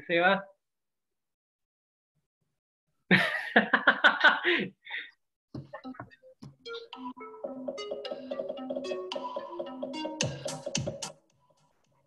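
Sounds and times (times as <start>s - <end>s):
man laughing: 3.1s - 4.8s.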